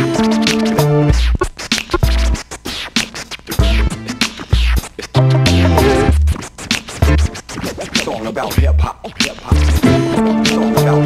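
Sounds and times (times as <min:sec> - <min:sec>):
hip-hop beat: 0:00.0 - 0:11.0
turntable scratching: 0:00.0 - 0:11.0.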